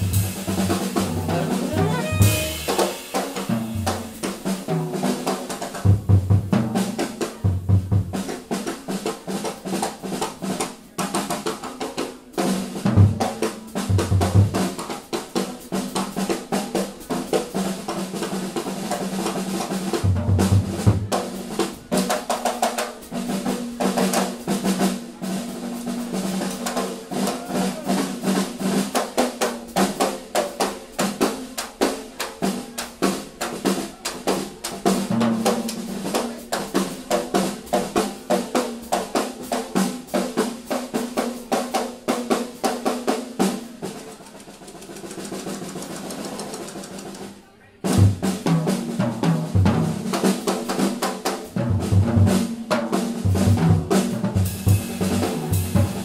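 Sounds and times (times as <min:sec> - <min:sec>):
jazz band playing: 0:00.0 - 0:11.6, 0:12.2 - 0:56.0
snare drum rolls: 0:00.0 - 0:56.0
bass line: 0:00.9 - 0:02.9
cymbal strokes: 0:01.7 - 0:04.2.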